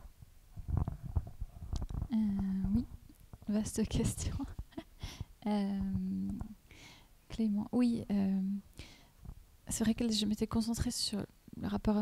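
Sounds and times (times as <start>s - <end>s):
microphone clicks: 0.6s - 6.6s.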